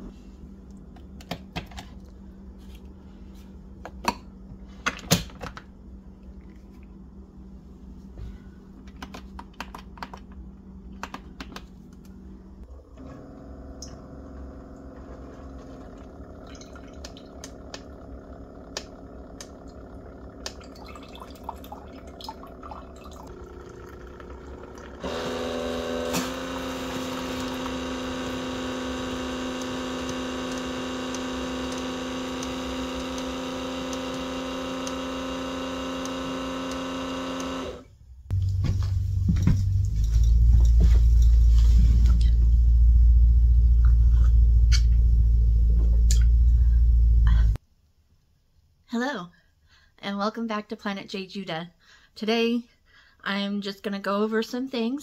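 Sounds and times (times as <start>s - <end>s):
coffee maker humming: 12.6s - 47.6s
coffee streaming into mug: 14.8s - 25.9s.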